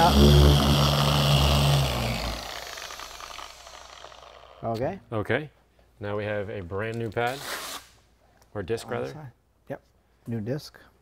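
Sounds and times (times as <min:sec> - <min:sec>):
polisher motor hum: 0:00.0 - 0:04.6.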